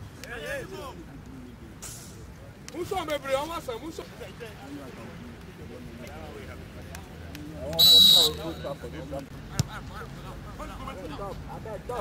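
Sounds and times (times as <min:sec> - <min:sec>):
referee's whistle blast: 0:07.8 - 0:08.7.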